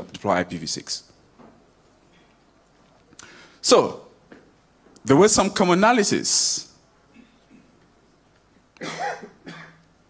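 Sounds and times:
man coughing into microphone: 0:08.8 - 0:09.8.

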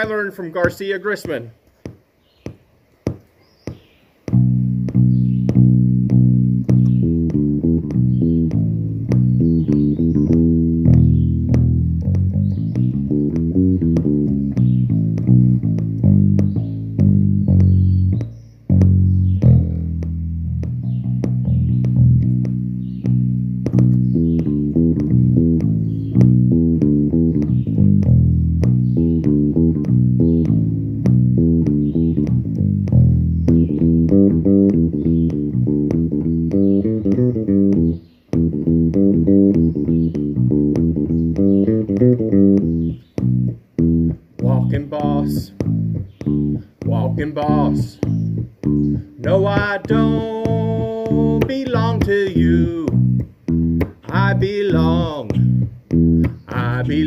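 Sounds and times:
electric bass guitar melody: 0:00.0 - 0:01.5, 0:02.4 - 0:57.0.

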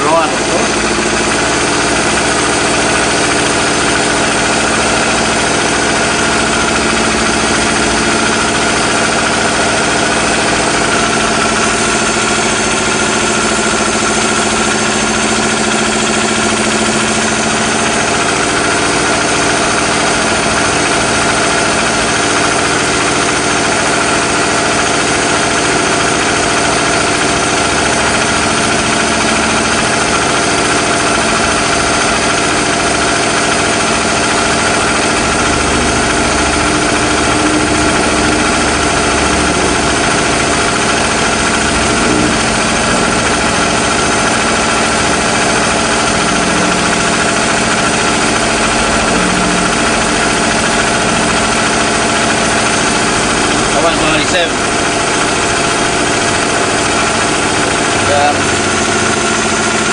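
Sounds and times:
engine idling: 0:00.0 - 0:59.9.

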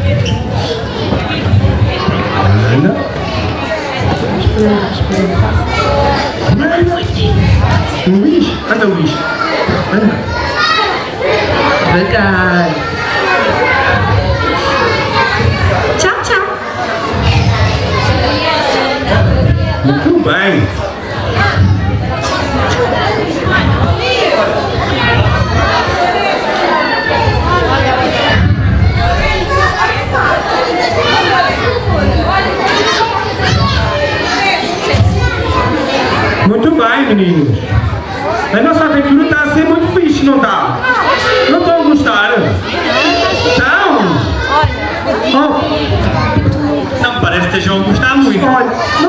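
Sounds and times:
children chattering and calling out: 0:00.0 - 0:49.0.

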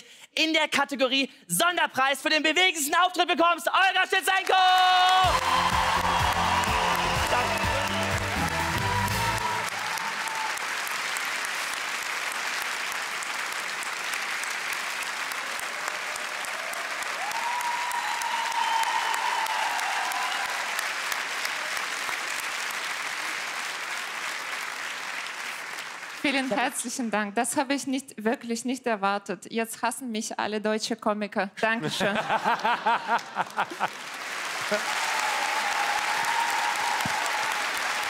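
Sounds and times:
audience applauding: 0:04.4 - 0:27.0, 0:32.2 - 0:38.0.

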